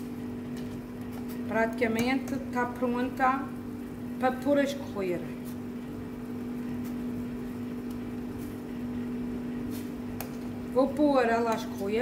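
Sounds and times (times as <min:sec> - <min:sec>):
kitchen equipment humming: 0:00.0 - 0:12.0.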